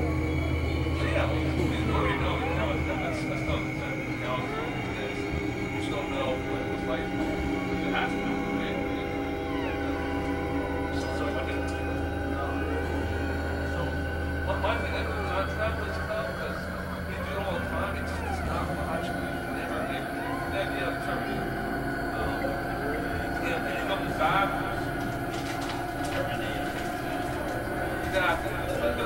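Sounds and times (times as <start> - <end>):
steady low hum: 0.0 - 29.0
synthesizer drone music: 0.0 - 29.0.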